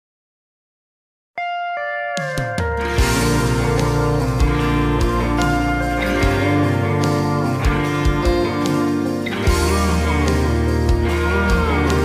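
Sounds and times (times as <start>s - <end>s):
guitar: 1.4s - 12.0s
steady bass line: 2.6s - 12.0s.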